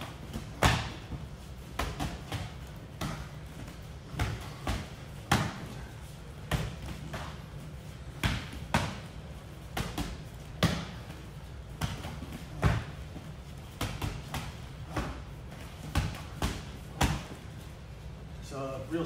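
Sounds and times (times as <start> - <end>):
punches and kicks on pads: 0.0 - 17.7.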